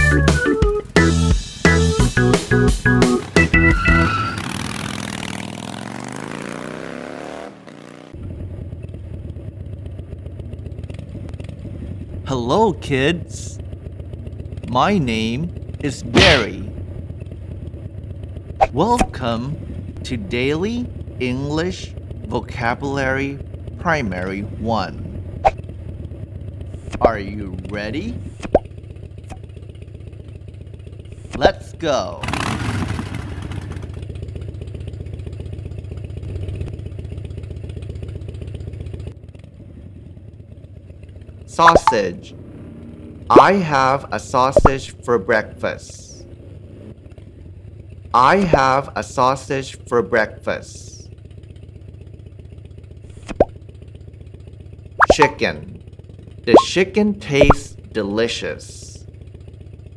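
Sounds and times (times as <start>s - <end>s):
motorcycle engine idling: 7.7s - 59.9s
rising plop sound effect: 41.6s - 42.0s, 44.6s - 44.8s, 53.2s - 53.5s, 55.0s - 55.5s, 56.5s - 56.8s, 57.4s - 57.7s.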